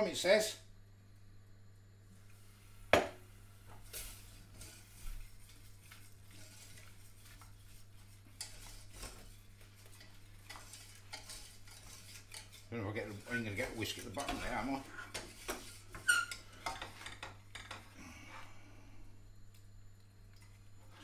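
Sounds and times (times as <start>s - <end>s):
whisk scraping a saucepan: 3.9s - 17.8s.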